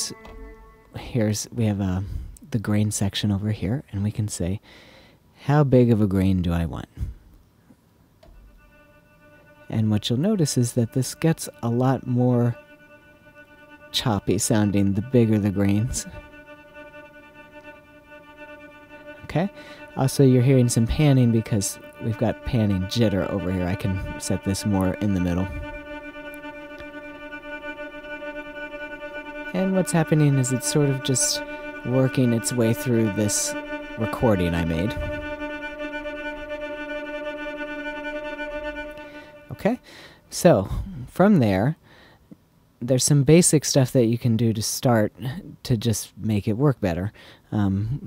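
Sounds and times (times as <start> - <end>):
choppy granular violin drone: 0.0 - 1.6, 8.4 - 39.9.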